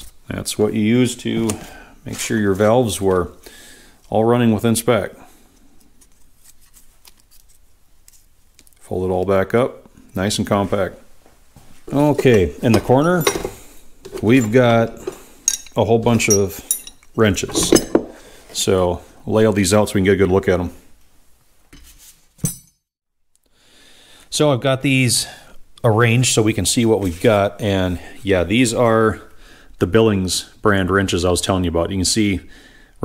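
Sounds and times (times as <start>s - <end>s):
metal wrenches handled: 11.9s - 18.2s.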